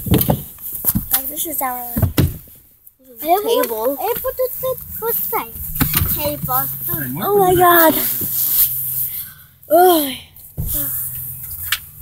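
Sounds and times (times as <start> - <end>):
microphone rubbing against hair: 4.0 - 9.2
person exclaiming: 6.9 - 8.2.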